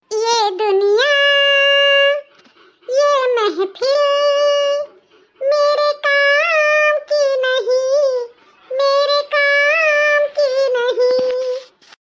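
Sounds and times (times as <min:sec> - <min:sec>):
high-pitched cartoon woman singing: 0:00.0 - 0:02.3, 0:02.9 - 0:11.8.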